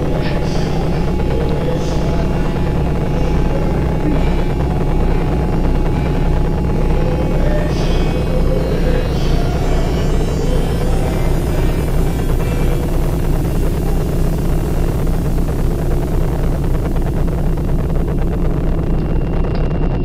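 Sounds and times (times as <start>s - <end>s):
low drone with pulsing bass: 0.0s - 20.0s.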